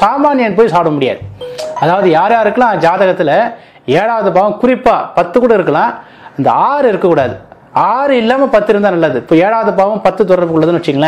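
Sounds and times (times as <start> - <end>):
quiet two-note chime: 1.4 - 3.0
man talking: 1.8 - 4.3.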